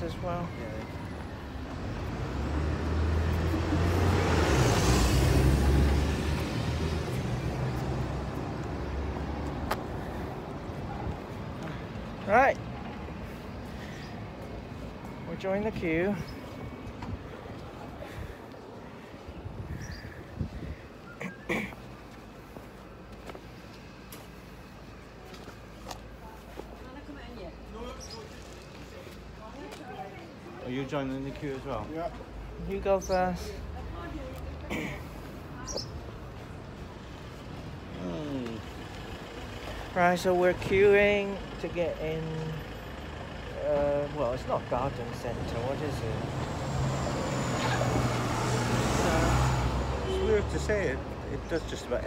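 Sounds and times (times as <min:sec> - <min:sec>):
low street rumble: 0:00.0 - 0:52.0
car driving past: 0:01.8 - 0:09.4, 0:45.7 - 0:51.1.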